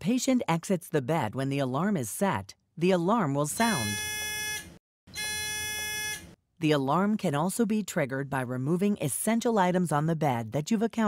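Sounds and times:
electronic buzzer alarm tones: 3.6 - 6.4.

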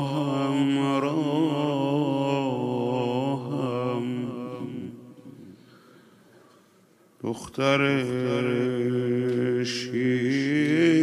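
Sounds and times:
man singing amplified mourning chant: 0.0 - 5.5, 7.2 - 11.0.

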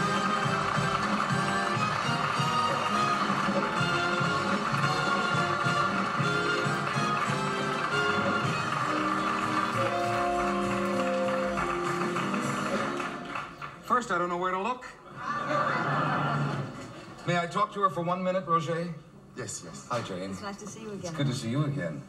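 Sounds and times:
studio band playing a tune: 0.0 - 13.8
audience applause: 0.0 - 13.9.

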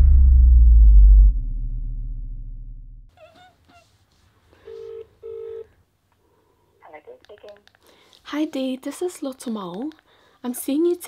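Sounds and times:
telephone ringback tone: 4.6 - 5.7.

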